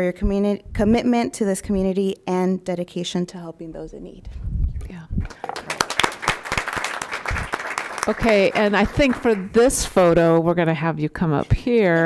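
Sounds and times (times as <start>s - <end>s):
small audience applauding: 5.3s - 10.0s.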